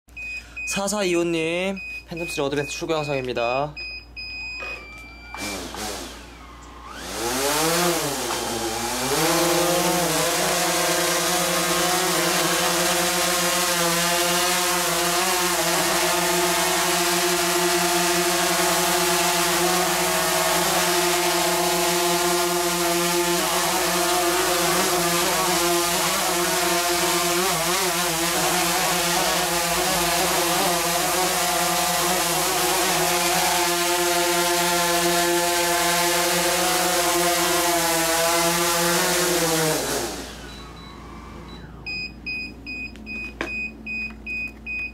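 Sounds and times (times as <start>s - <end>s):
drone propellers buzzing whine: 4.5s - 42.0s.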